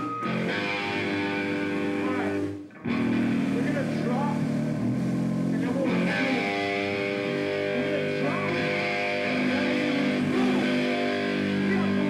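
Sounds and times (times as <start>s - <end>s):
live doom metal band playing: 0.0s - 12.0s.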